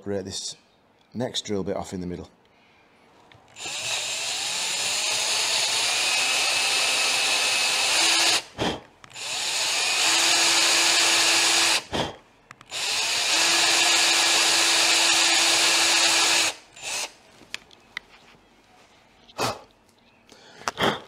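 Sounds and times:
cordless drill drilling into metal: 3.6 - 8.5, 9.1 - 11.9, 12.7 - 17.2.

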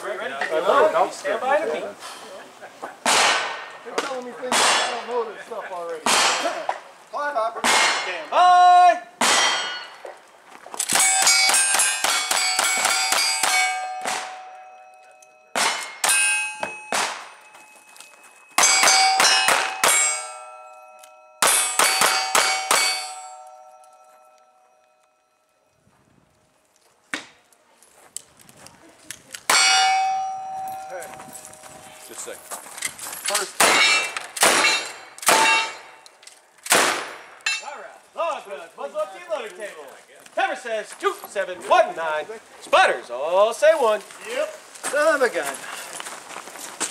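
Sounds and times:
gunshots hitting ringing steel targets: 3.0 - 3.7, 4.4 - 5.2, 6.0 - 6.6, 7.6 - 8.3, 9.2 - 10.0, 10.8 - 17.8, 18.6 - 24.4, 29.5 - 31.4, 33.4 - 36.0
sharp metal clank: 9.2 - 10.0, 10.8 - 17.5, 18.5 - 24.4, 29.5 - 31.6, 33.6 - 36.0, 36.7 - 37.7.

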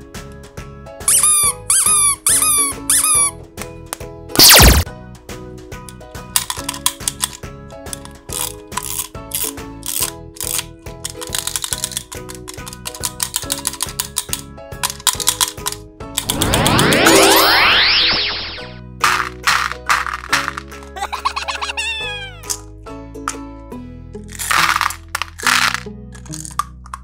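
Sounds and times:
squeaky toy ball squeaking: 1.1 - 3.4
wind-up toy clicking: 6.4 - 15.8
downward-sliding sound effect: 16.2 - 18.8.

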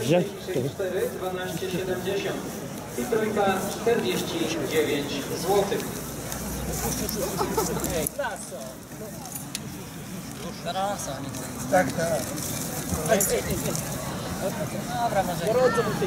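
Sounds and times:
people talking outdoors: 0.0 - 16.0.

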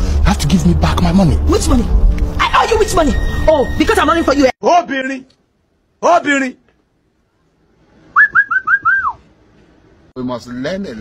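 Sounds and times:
person whistling short notes: 8.2 - 9.2.

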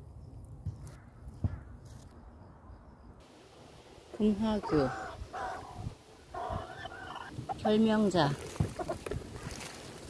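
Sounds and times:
crow cawing: 4.6 - 7.3.

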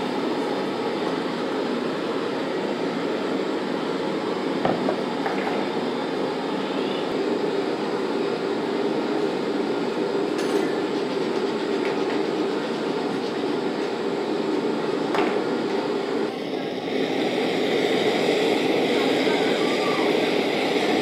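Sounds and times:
steady mechanical rumble: 0.0 - 21.0.

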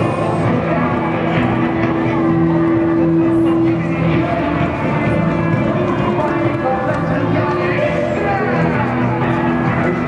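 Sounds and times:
mixed voices: 0.0 - 10.0
traffic: 0.0 - 10.0.

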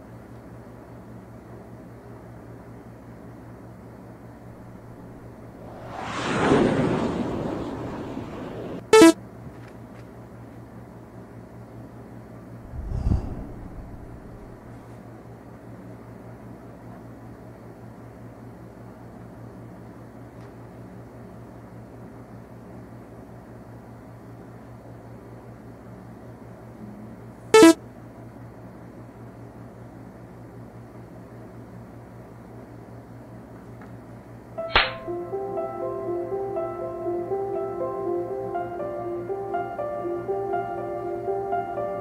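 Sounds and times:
steady low hum: 4.3 - 8.9, 12.5 - 15.0
hiss: 5.5 - 8.8
synthesized two-note blip: 9.0 - 9.2, 27.6 - 27.8
faint low hum: 12.6 - 15.0.

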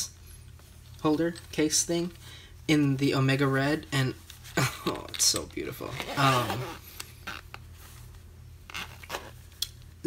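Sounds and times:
gloved hands rubbing case: 5.2 - 9.6.

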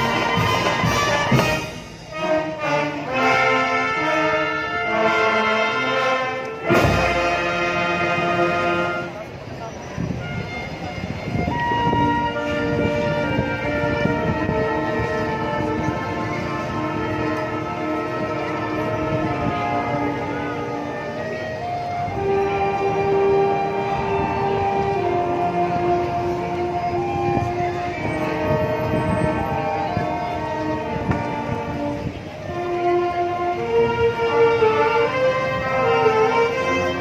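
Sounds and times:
steady drum beats: 0.0 - 2.8, 6.6 - 7.7
brass held chords: 0.0 - 9.4, 10.2 - 37.0.

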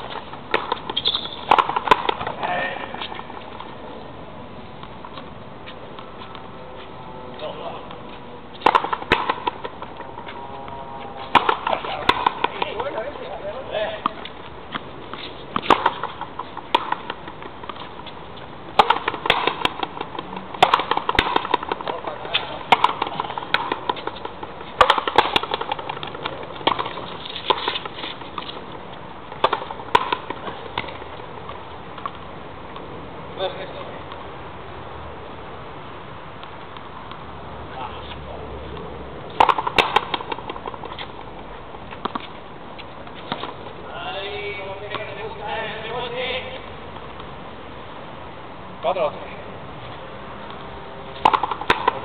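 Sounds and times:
ball cracking off rackets: 0.0 - 3.8, 7.8 - 32.9, 38.0 - 46.4, 50.4 - 52.0
ball smacking against wall: 18.8 - 22.0, 22.7 - 24.1.

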